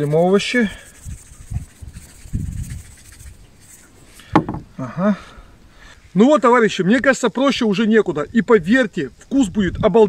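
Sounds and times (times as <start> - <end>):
sharp knock: 4.3 - 4.7
thuds on wooden cutting board: 4.3 - 4.7.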